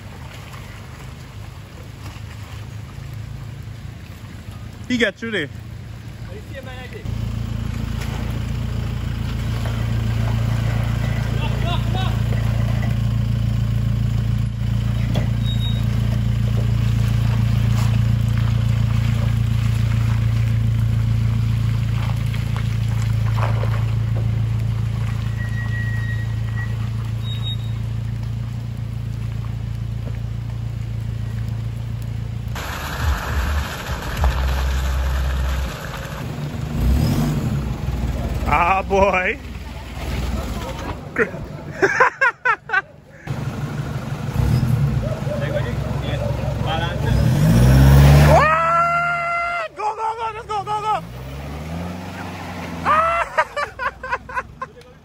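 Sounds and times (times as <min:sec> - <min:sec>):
truck engine low drone: 0:00.0 - 0:55.0.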